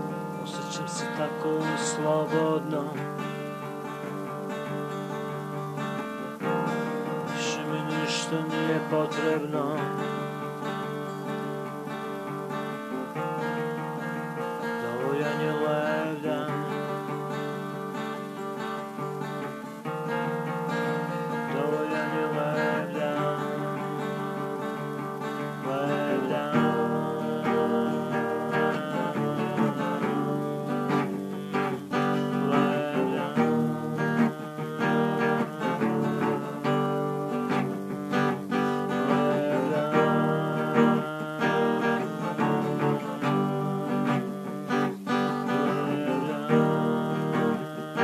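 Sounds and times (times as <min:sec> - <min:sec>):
acoustic guitar strumming: 0:00.0 - 0:48.0.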